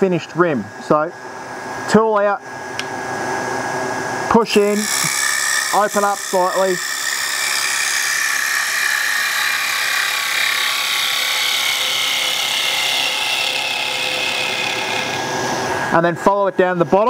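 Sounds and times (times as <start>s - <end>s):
gouge cutting wood on lathe: 4.6s - 15.4s.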